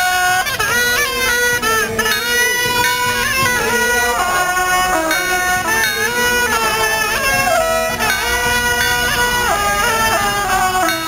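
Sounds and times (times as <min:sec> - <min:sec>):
shawm playing reedy melody: 0:00.0 - 0:11.0.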